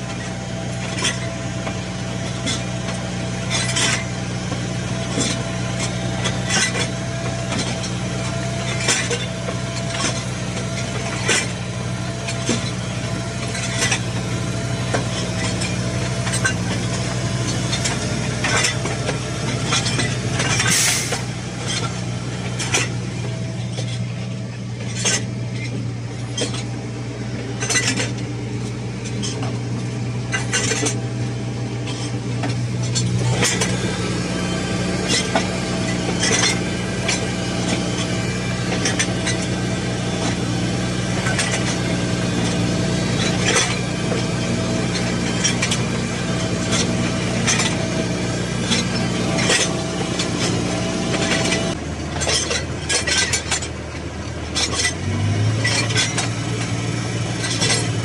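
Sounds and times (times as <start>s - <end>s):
metallic clanks and rattles: 0.0s - 58.0s
tractor engine running: 0.0s - 58.0s.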